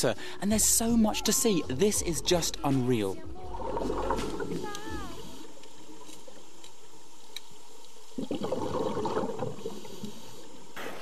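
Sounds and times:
steady underwater hiss: 0.0 - 11.0
underwater rush of water: 0.4 - 11.0.

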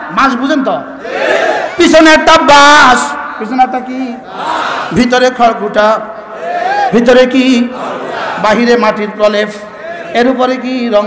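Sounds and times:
man preaching over loudspeaker: 0.0 - 1.0, 1.7 - 4.3, 4.9 - 7.8, 8.4 - 11.0.

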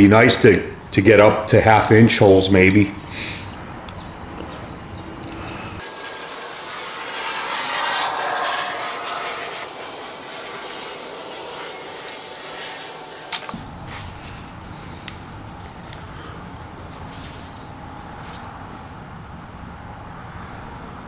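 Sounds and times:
blade scraping metal edges: 5.8 - 13.6.

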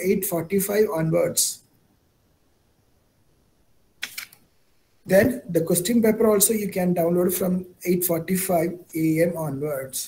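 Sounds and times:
sharp clicks: 4.0 - 4.4.

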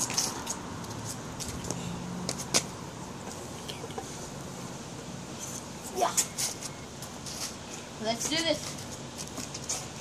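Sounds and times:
faint outdoor background hum: 0.0 - 10.0.

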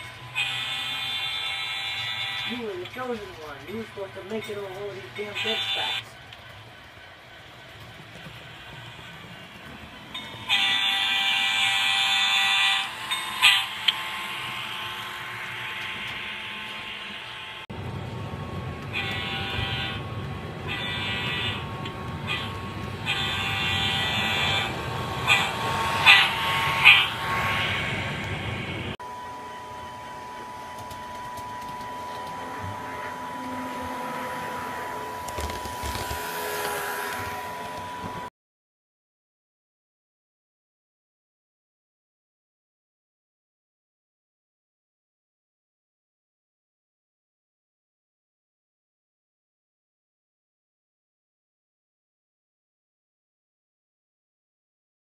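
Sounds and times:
steady hum: 0.0 - 38.3
low engine rumble: 1.1 - 38.3
model train horn blasts: 5.2 - 6.1, 10.4 - 17.6, 18.9 - 28.1, 31.8 - 35.3.

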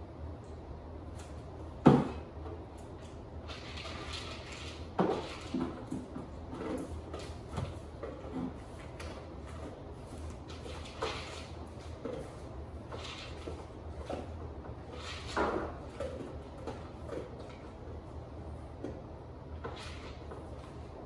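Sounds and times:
dog eating from food bowl: 3.1 - 18.2.

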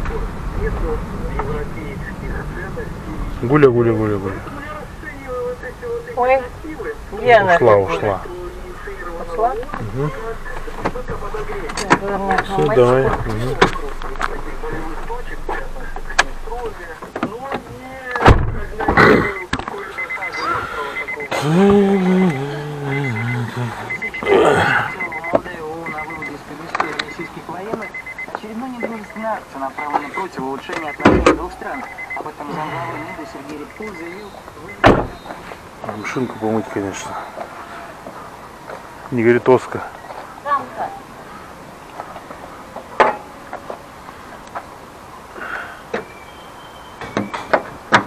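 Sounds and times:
indistinct voices: 0.0 - 43.6
car door opening and shutting: 9.5 - 19.8, 30.7 - 32.2, 34.7 - 35.4.

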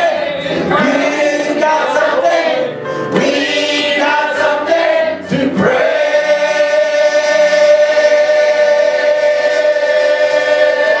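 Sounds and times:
choir singing gospel: 0.0 - 11.0
electric keyboard: 0.0 - 11.0.

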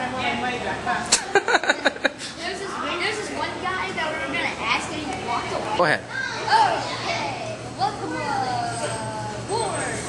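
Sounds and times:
young voices talking: 0.0 - 10.0.

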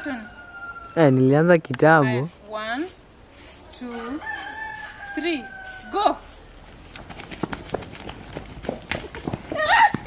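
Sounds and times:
children's feet running on grass: 4.2 - 10.0.

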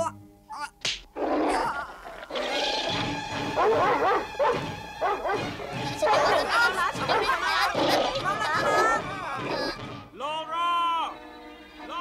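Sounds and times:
cartoon dog barking and growling: 1.2 - 9.8.

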